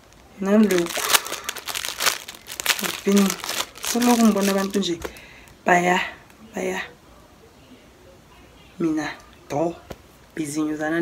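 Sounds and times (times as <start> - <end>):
plastic packaging crinkling: 0.0 - 5.6.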